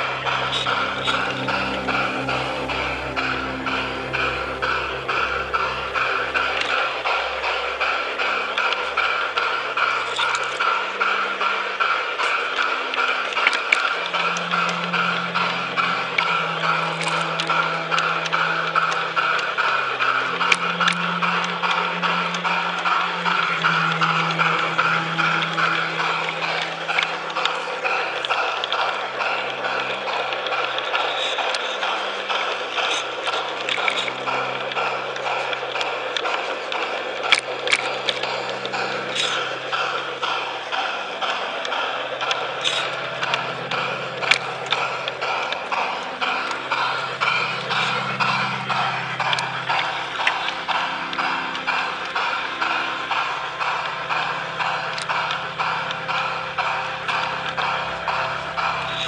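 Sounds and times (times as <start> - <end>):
model train rattling on track: 0.0 - 59.0
music with held low notes: 0.0 - 59.0.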